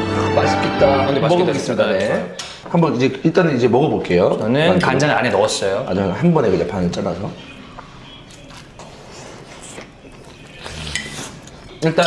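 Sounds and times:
person chewing: 8.2s - 11.8s.

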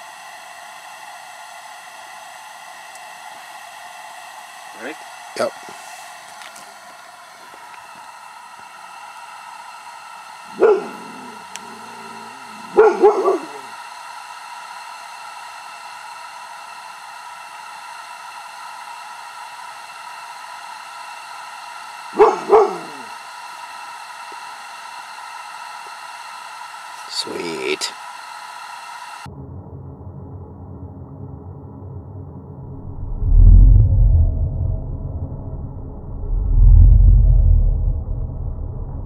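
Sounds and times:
dog barking: 10.5s - 13.8s, 22.1s - 23.1s.

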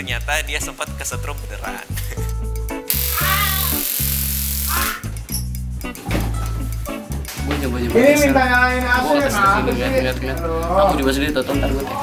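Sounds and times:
background music: 0.0s - 12.0s
loud hiss: 2.9s - 5.0s
boy screaming: 3.1s - 3.8s.

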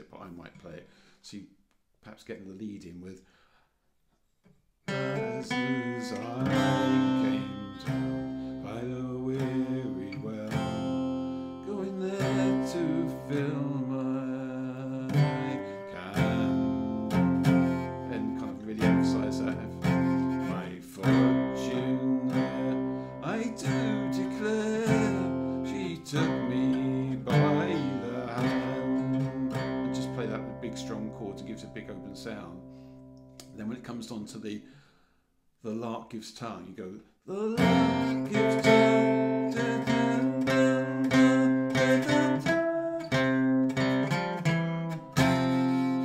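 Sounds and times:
acoustic guitar folk tune: 4.9s - 33.8s, 37.4s - 46.0s.

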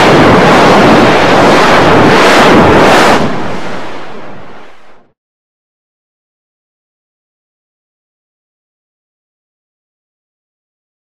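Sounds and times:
harsh distorted noise: 0.0s - 5.0s.

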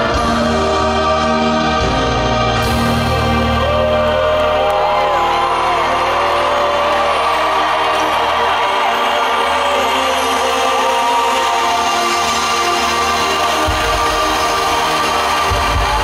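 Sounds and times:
crowd cheering and whooping: 0.0s - 16.0s.

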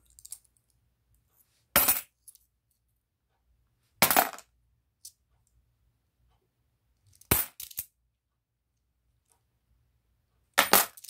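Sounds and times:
coins clinking: 7.4s - 7.8s.

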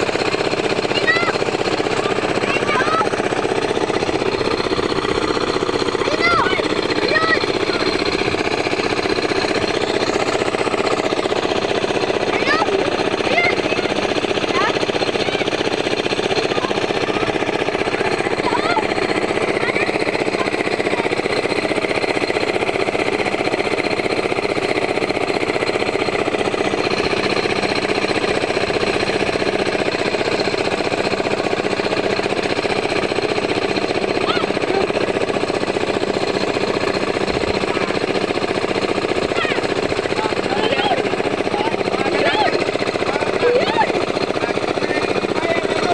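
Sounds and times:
boat engine clattering: 0.0s - 45.9s.

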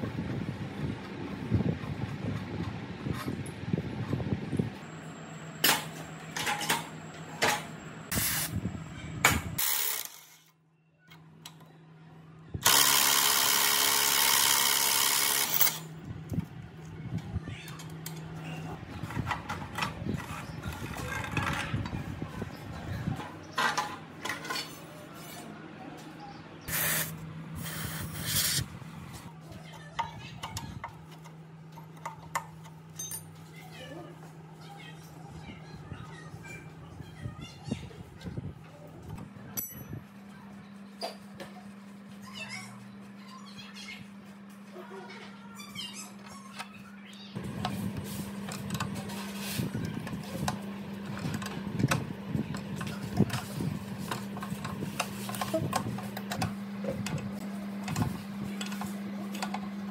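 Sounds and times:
metal clanks and scrapes: 17.8s - 22.1s, 23.2s - 25.5s.

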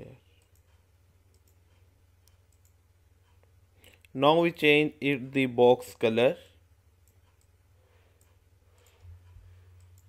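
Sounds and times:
low electrical hum: 0.0s - 10.0s
computer mouse clicks: 0.3s - 4.1s, 8.2s - 10.0s.

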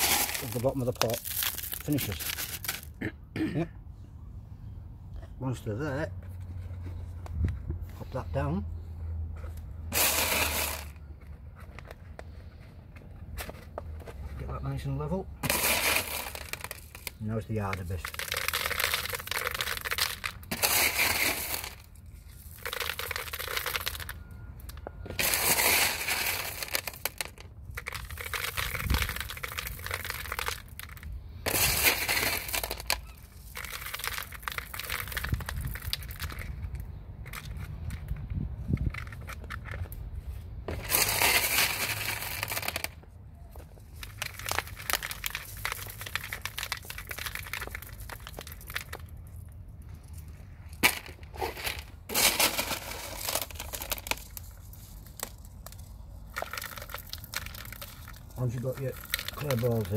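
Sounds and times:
clay pebbles rattling and crunching: 0.0s - 3.0s, 9.4s - 59.9s.

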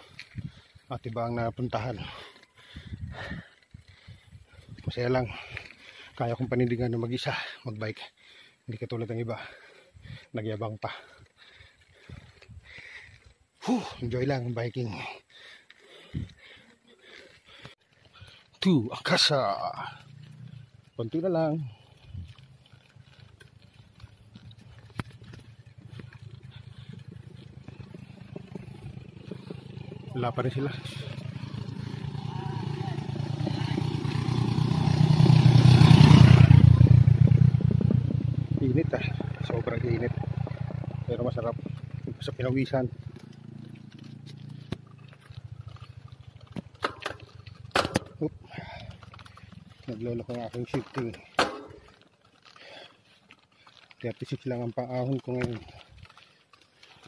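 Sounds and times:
bicycle road noise on concrete: 0.0s - 57.0s
wind rumbling on microphone: 0.1s - 0.8s, 2.6s - 5.4s, 36.2s - 39.6s
small rattles and clicks: 15.0s - 33.0s, 38.8s - 57.0s
wind on microphone: 36.6s - 38.6s.

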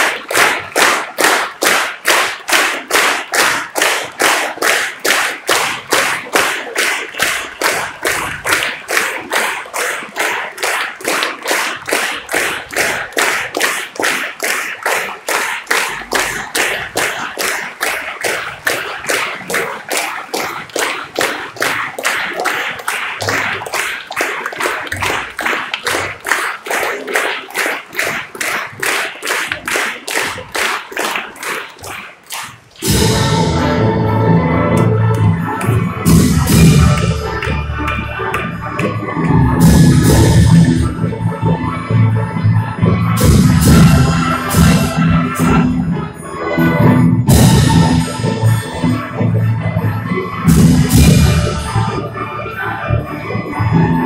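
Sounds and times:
audience clapping in rhythm: 0.0s - 54.0s.

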